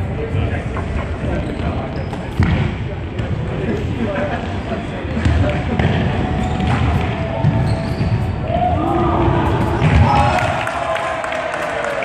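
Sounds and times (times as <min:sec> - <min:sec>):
players shouting: 0:08.4 - 0:12.0.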